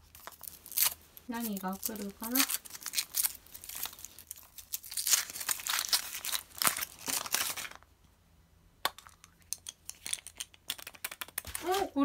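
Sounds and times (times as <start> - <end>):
foil wrapper crinkling and tearing: 0.0 - 7.8.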